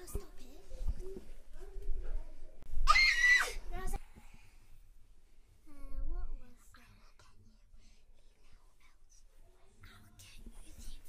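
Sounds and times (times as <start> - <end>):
faint whispering voices: 5.6 - 11.0.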